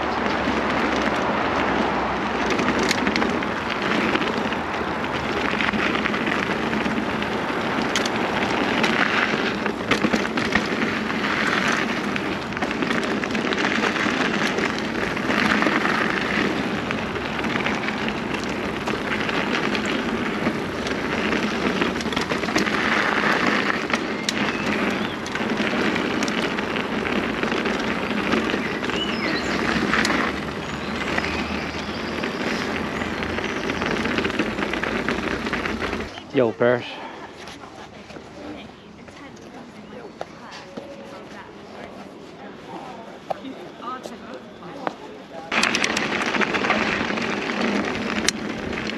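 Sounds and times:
bike rattling over stones: 0.0 - 48.9
bike tyres crunching on gravel: 0.0 - 48.9.

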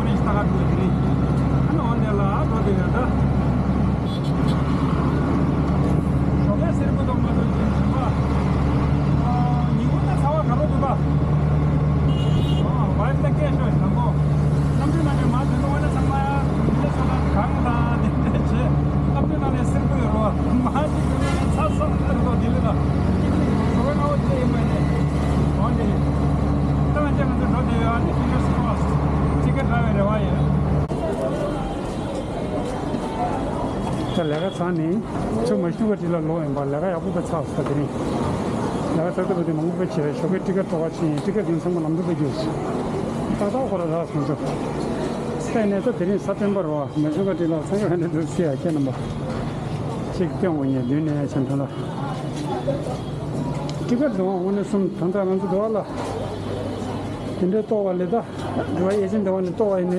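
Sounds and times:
auto-rickshaw engine droning: 0.0 - 59.9
road and traffic noise: 0.0 - 59.9.

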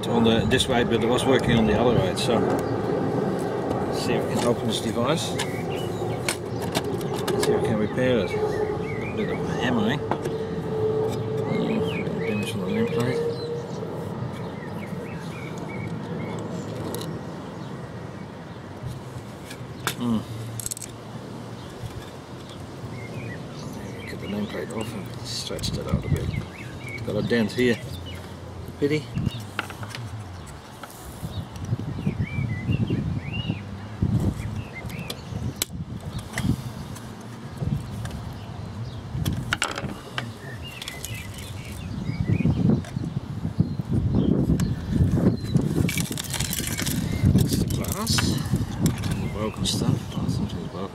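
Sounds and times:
birds chirping faintly: 0.0 - 50.9
clicks and knocks on wooden table: 39.3 - 40.3.

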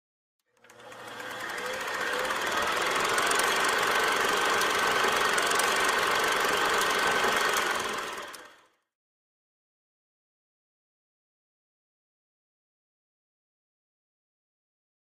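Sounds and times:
film projector clattering: 0.6 - 8.6.

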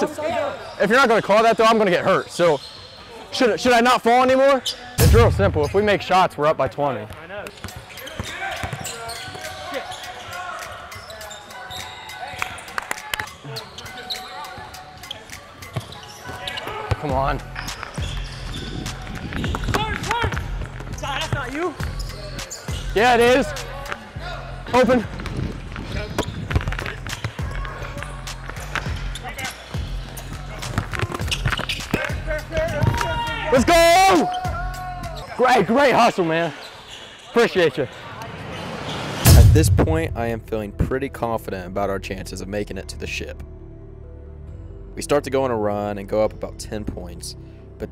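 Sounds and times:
players running on hardwood court: 11.1 - 22.0, 24.8 - 34.4.

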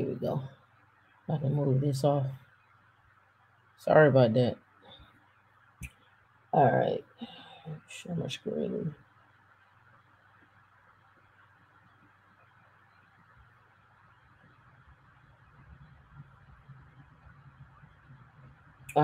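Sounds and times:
low steady hum: 0.0 - 19.0
soft hiss: 0.0 - 19.0.

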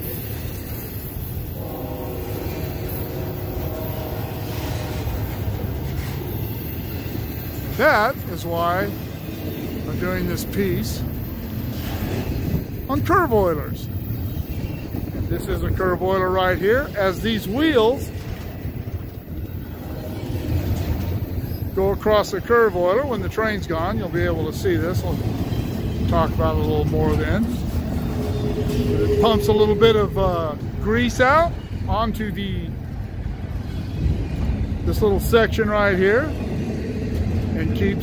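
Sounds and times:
train wheels rumbling on rails: 0.0 - 38.0.

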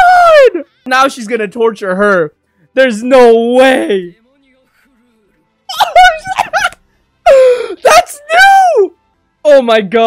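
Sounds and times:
young man wailing: 0.0 - 0.6, 5.7 - 8.9.

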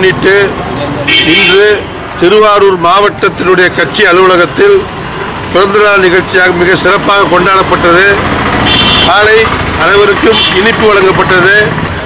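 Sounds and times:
man speaking: 0.0 - 4.9, 5.5 - 8.2, 9.0 - 11.8.

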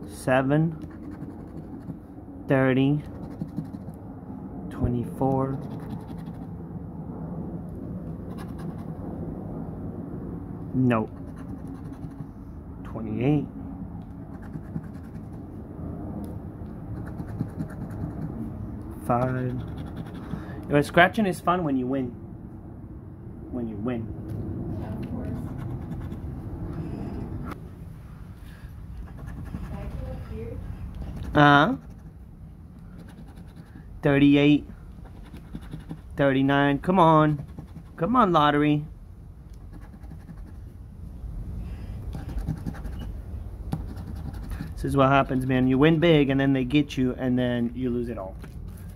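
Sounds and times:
coin scratching lottery ticket: 0.7 - 2.1, 3.0 - 4.0, 5.2 - 6.5, 8.2 - 9.0, 11.0 - 12.4, 14.2 - 15.4, 16.9 - 18.4, 19.0 - 20.5, 25.2 - 26.3, 29.0 - 30.3, 31.0 - 32.2, 32.9 - 38.6, 39.7 - 40.6, 42.1 - 45.9.

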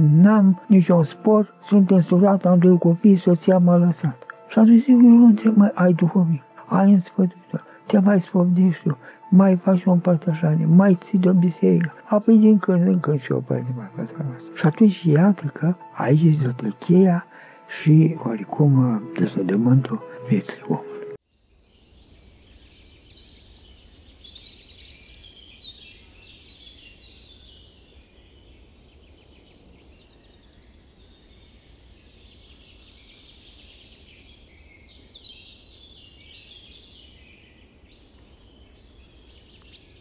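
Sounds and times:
speech: 0.0 - 21.0
small birds chirping and singing: 0.0 - 40.0.

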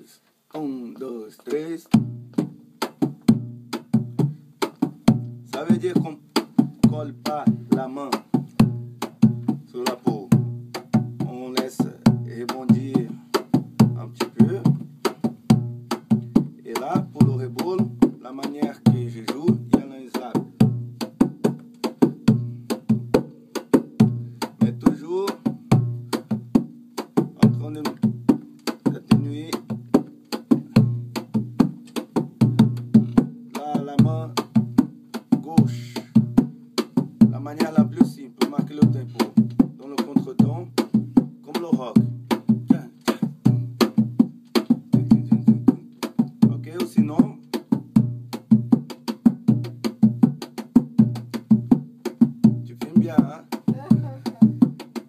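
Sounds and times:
hand drum played with hands: 1.9 - 55.0.

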